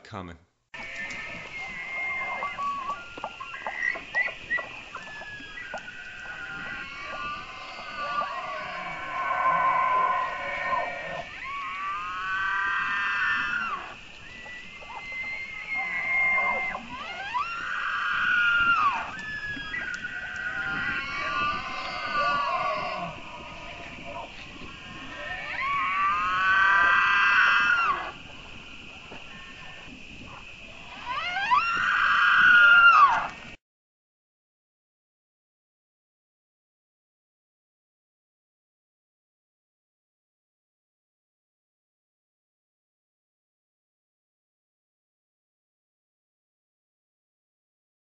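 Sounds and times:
steady high hiss: 0:00.0 - 0:33.6
elk bugling: 0:00.8 - 0:33.4.

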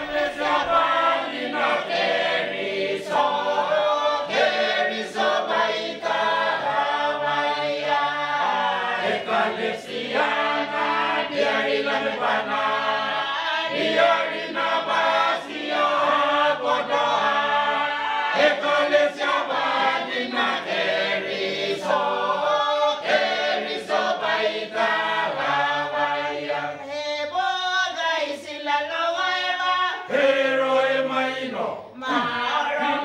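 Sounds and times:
mixed choir singing unaccompanied: 0:00.0 - 0:33.0.

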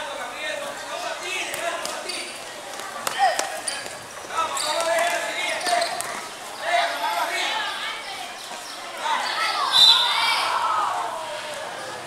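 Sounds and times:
children shouting: 0:06.6 - 0:12.0.

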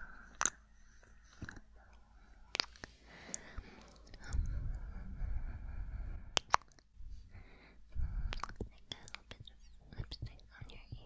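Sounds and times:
woman whispering: 0:08.3 - 0:11.0.

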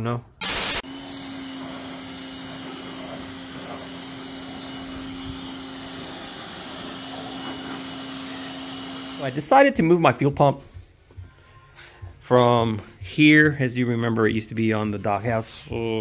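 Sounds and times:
motor hum: 0:00.4 - 0:09.3
pressure washer water jet hissing: 0:00.4 - 0:09.5.

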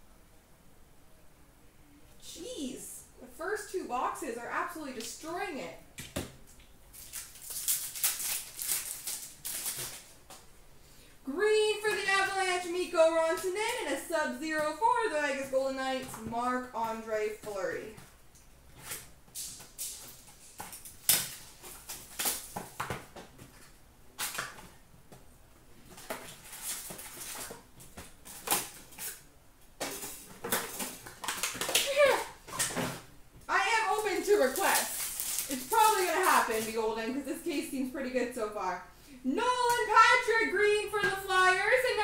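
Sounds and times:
person talking: 0:02.2 - 0:05.8, 0:11.3 - 0:18.0, 0:31.8 - 0:32.4, 0:33.5 - 0:34.9, 0:35.5 - 0:42.0
wrapper crackling and tearing: 0:06.9 - 0:10.2, 0:18.8 - 0:22.8, 0:25.9 - 0:27.6, 0:28.2 - 0:29.2, 0:29.9 - 0:32.8, 0:33.6 - 0:36.8.

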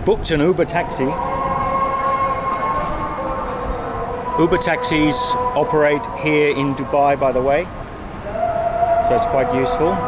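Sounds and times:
low street rumble: 0:00.0 - 0:10.0
steady high whine: 0:00.0 - 0:10.0.

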